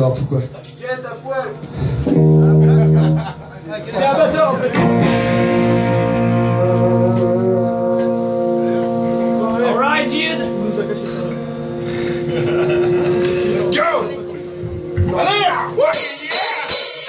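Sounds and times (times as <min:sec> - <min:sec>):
electric bass and guitar chord: 0:01.7 - 0:03.4, 0:04.7 - 0:17.0.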